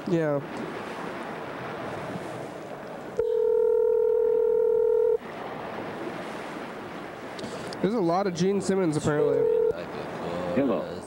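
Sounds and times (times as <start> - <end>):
phone line hiss: 3.2 - 5.2
telephone ringback tone: 3.2 - 5.2, 9.4 - 9.8.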